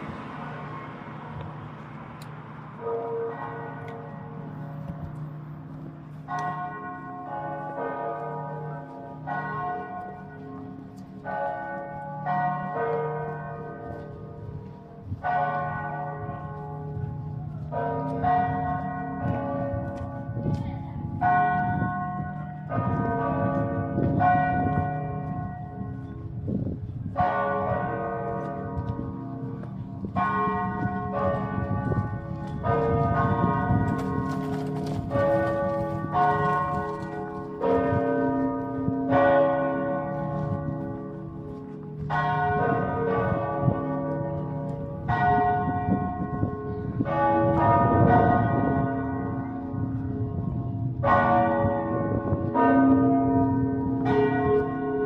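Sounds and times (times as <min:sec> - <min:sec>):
church bells pealing: 0:00.0 - 0:55.0.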